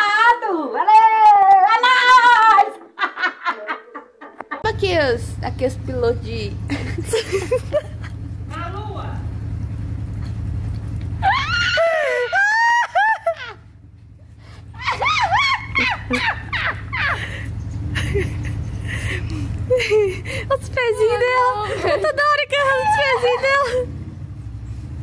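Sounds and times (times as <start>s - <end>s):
low hum: 4.6s - 25.0s
person shrieking and whooping: 11.2s - 13.6s, 14.8s - 17.2s, 22.7s - 23.7s.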